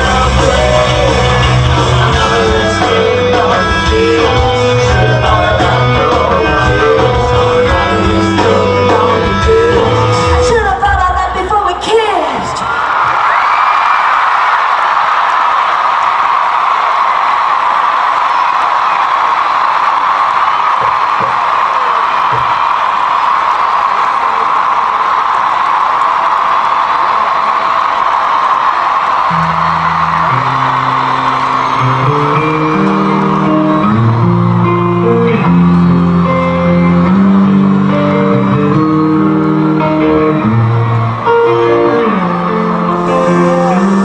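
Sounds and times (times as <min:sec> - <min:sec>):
bass guitar and guitar playing: 0:00.0 - 0:11.3, 0:29.3 - 0:44.0
concert crowd cheering and screaming: 0:00.0 - 0:44.0.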